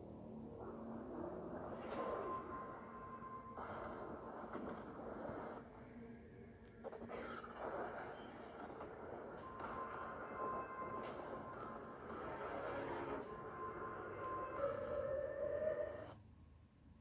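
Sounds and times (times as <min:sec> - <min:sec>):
film trailer score: 0:00.0 - 0:05.7, 0:06.5 - 0:16.2.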